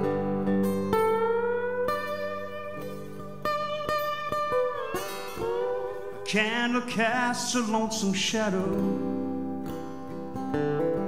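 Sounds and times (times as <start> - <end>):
country-rock band playing: 0.0 - 7.9
sliding lead guitar line: 0.0 - 11.0.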